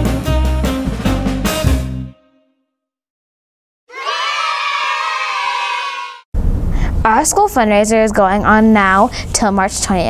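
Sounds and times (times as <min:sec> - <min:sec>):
children cheering: 0:03.9 - 0:06.2.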